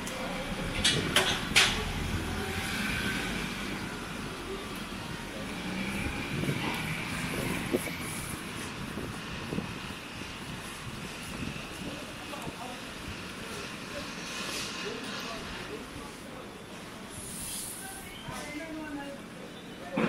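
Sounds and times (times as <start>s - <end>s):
vehicle engine rumble: 0.0s - 18.4s
faint voices: 0.0s - 20.0s.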